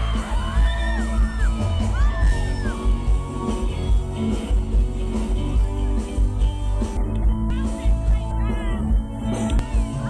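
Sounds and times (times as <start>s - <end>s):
electric guitar: 0.0s - 10.0s
live band playing: 0.0s - 10.0s.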